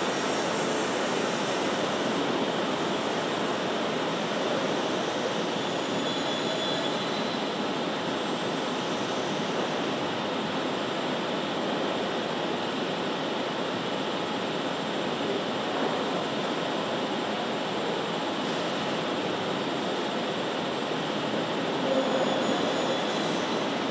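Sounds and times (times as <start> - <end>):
faint high whine: 0.0 - 9.7, 21.8 - 23.9
rushing machinery noise: 0.0 - 23.9.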